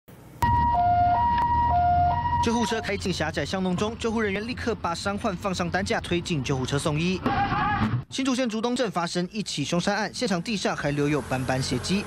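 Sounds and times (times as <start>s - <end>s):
ambulance two-tone siren: 0.4s - 3.0s.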